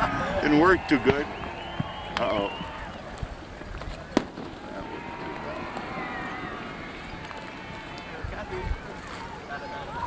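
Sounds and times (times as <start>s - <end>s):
fireworks bang: 3.8s - 7.6s.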